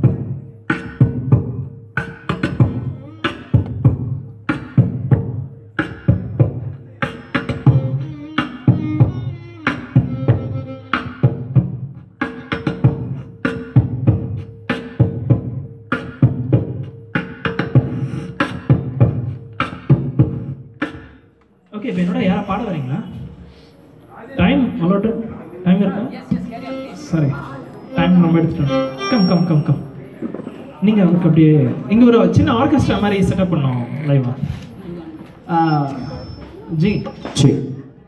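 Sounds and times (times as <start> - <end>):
beatboxing through microphone: 0.0 - 21.3, 27.8 - 37.4.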